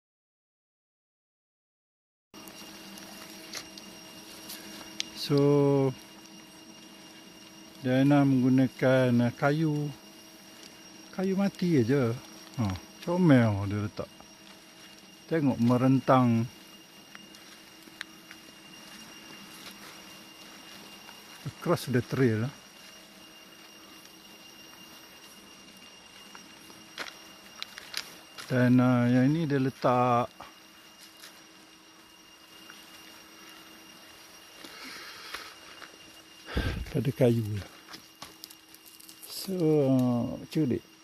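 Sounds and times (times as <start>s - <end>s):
low hum: 2.4s - 41.0s
steady high drone: 2.4s - 41.0s.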